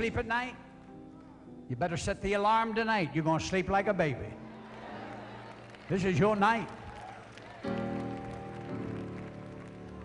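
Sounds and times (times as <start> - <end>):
organ-like keyboard chords: 0.0 - 10.0.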